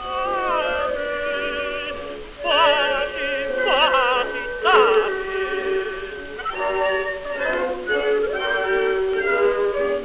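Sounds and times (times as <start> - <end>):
tenor singing with orchestra: 0.0 - 10.0.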